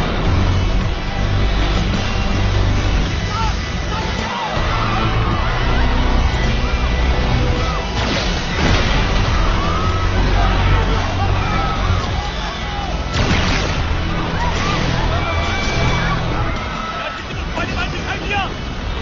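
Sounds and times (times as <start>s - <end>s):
action film music: 0.0s - 19.0s
crowd shouting: 0.0s - 19.0s
loud crashes: 7.4s - 12.4s, 13.0s - 18.9s
steady low rumble: 12.9s - 19.0s.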